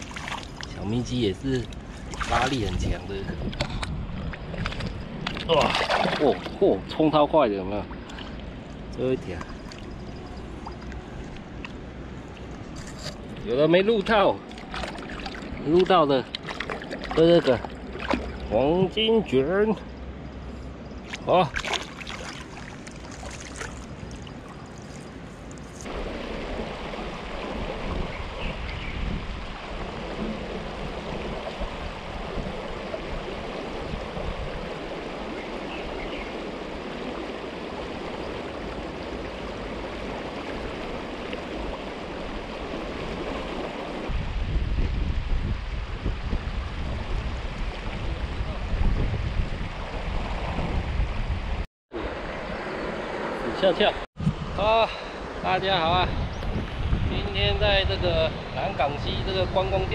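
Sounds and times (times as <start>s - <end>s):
wind rumble on microphone: 0.0s - 19.2s, 22.8s - 59.9s
river water gurgling: 0.0s - 44.2s.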